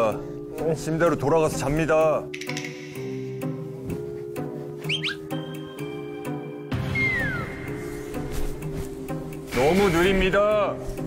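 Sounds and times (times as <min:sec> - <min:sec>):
light background music: 0:00.0 - 0:11.0
whistle-like chirps: 0:04.8 - 0:05.7, 0:06.8 - 0:07.9.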